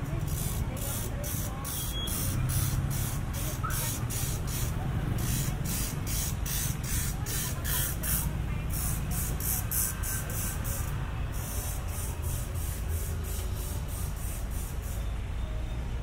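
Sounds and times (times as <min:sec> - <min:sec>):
low rumble of road traffic: 0:00.0 - 0:16.0.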